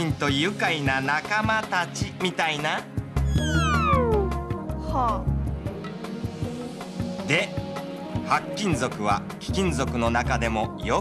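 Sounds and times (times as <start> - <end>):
background music: 0.0 - 11.0
comic falling tone: 3.2 - 4.3.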